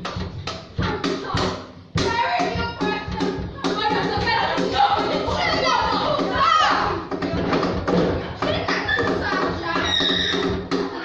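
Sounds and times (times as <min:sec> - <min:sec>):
children shouting and chattering: 0:00.8 - 0:11.0.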